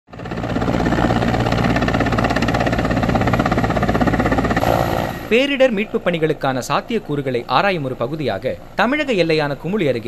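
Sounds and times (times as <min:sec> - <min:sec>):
helicopter engine noise: 0:00.1 - 0:10.0
helicopter rotor beat: 0:00.1 - 0:10.0.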